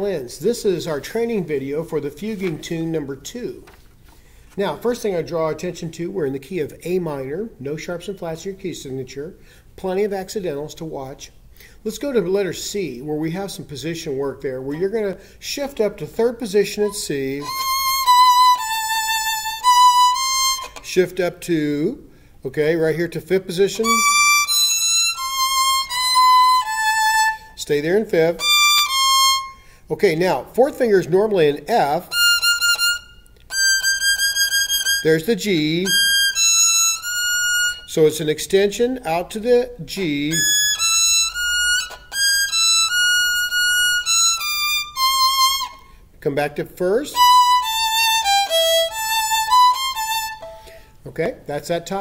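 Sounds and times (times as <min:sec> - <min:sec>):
violin bowing sustained high notes: 0:16.8 - 0:20.9, 0:23.7 - 0:27.6, 0:28.3 - 0:29.6, 0:32.1 - 0:35.2, 0:35.8 - 0:38.0, 0:40.3 - 0:45.8, 0:47.1 - 0:50.8.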